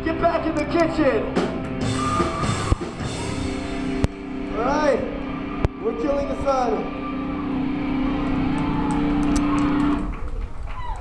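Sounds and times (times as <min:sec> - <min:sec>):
clicks and stage noise: 0:08.2 - 0:11.0.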